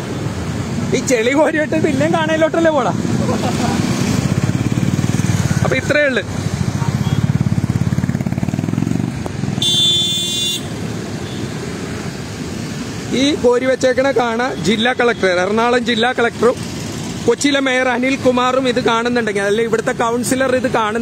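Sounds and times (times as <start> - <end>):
vehicle horn: 9.6 - 11.5.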